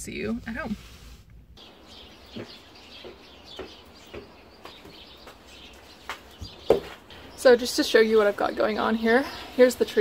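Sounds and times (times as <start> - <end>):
small birds chirping: 1.6 - 10.0.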